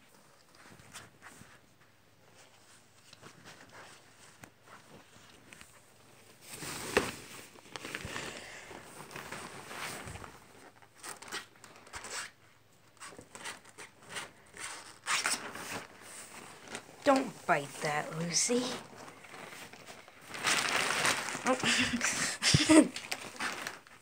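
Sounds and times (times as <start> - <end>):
fabric and nylon rustling: 0.1 - 24.0.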